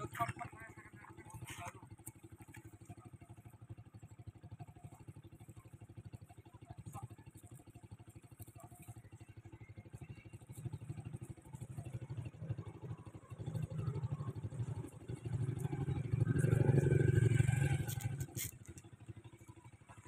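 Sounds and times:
passing vehicle engine: 11.5 - 18.8.

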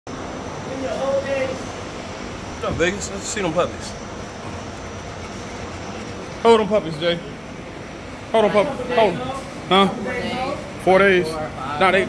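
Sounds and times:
steady background noise: 0.1 - 12.0.

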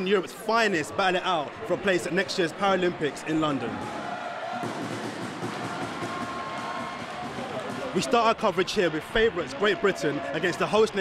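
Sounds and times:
sports hall ambience: 0.0 - 11.0.

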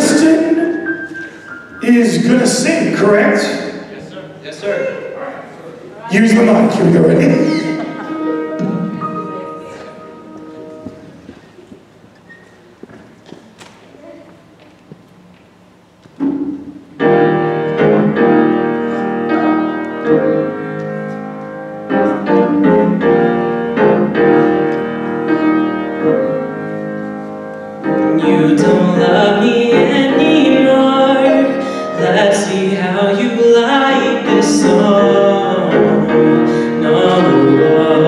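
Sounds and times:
keyboard playing piano chords: 0.0 - 5.5, 6.1 - 11.7, 16.2 - 38.0.

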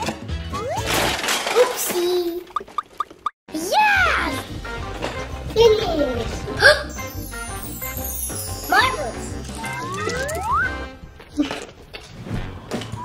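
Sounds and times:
children's background music: 3.5 - 11.2
falling high whistle: 9.6 - 10.8
rising whistle-like glides: 9.6 - 10.8.

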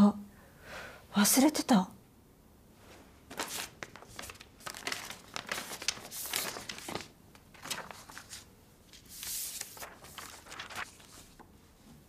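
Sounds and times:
paper rustling: 2.9 - 12.0.

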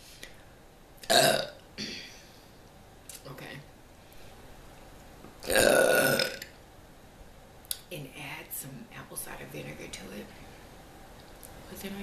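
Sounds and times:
woman burping: 1.1 - 2.2, 5.4 - 6.5.

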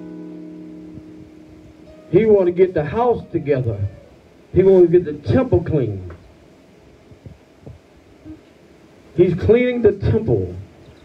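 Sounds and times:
faint low thumps: 0.0 - 8.6
low steady hum: 0.0 - 11.0.

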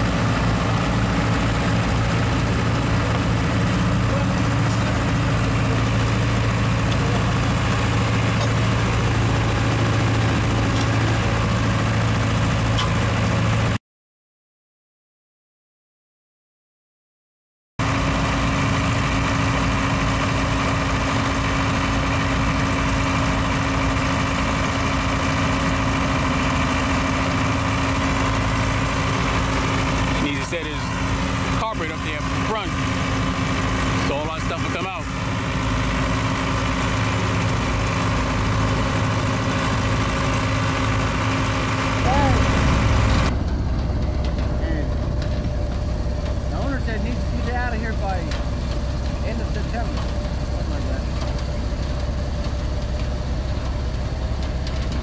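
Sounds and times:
deep engine rumble: 0.0 - 13.8, 17.8 - 55.0
engine humming: 0.0 - 13.8, 17.8 - 55.0
voices: 29.9 - 35.1, 42.0 - 42.7.

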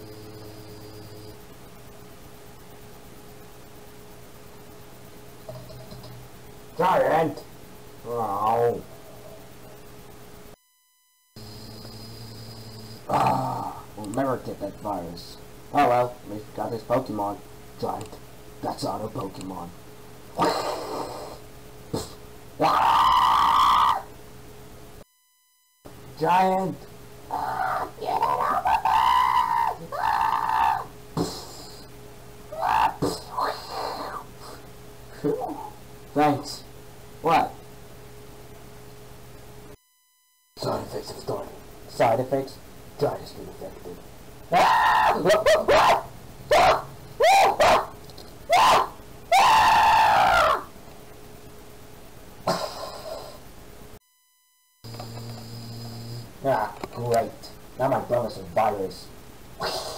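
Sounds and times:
faint steady hum: 0.0 - 59.9
man growling and groaning: 13.1 - 13.9, 22.0 - 24.0, 27.3 - 31.5, 32.5 - 34.2
cartoon character screaming: 22.6 - 24.1, 27.3 - 30.9, 32.5 - 34.2, 44.5 - 47.9, 48.5 - 50.7.

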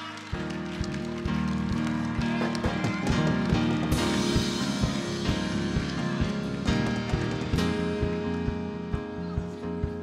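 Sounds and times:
live band bass and drums: 0.4 - 10.0.

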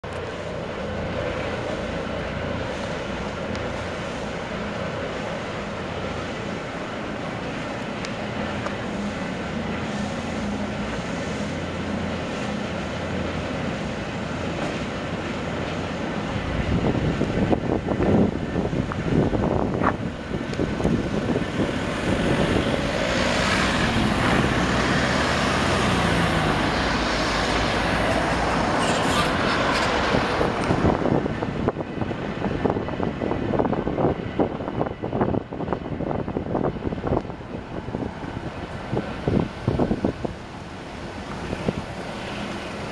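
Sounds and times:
road traffic noise: 0.0 - 42.9
vehicle passing close by: 21.9 - 31.0.

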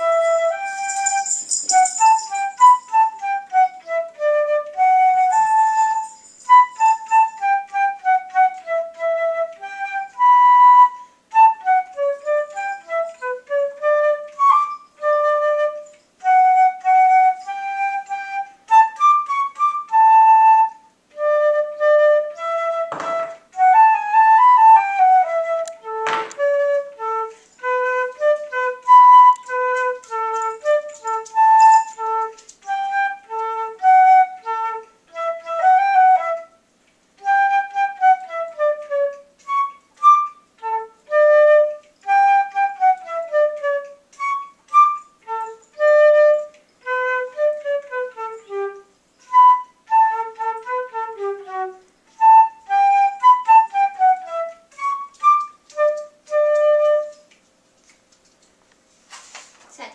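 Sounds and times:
concert flute melody: 0.0 - 58.4.

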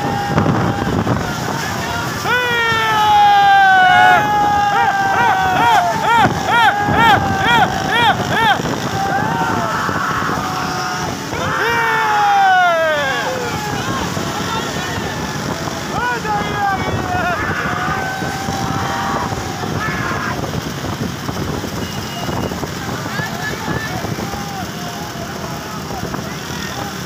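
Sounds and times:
wind on microphone: 0.0 - 2.3, 3.9 - 11.7, 13.2 - 24.4
long falling yell: 0.0 - 20.6
motorcycle engines running: 0.0 - 27.0
people shouting and whooping: 0.0 - 27.0.

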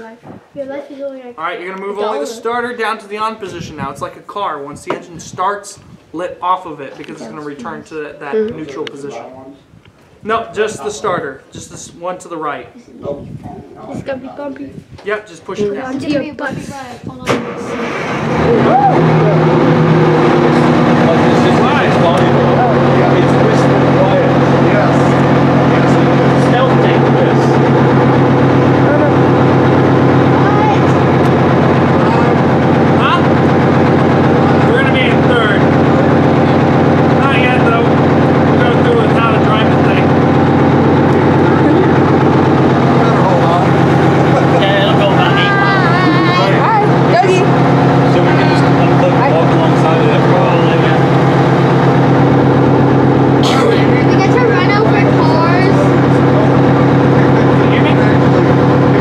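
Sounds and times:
tank engine running loudly: 17.4 - 59.0
raised voices: 18.2 - 59.0.

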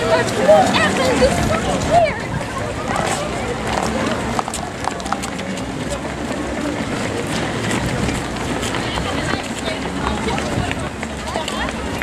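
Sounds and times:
hubbub of voices: 0.0 - 12.0
runners' footsteps on asphalt: 0.0 - 12.0.

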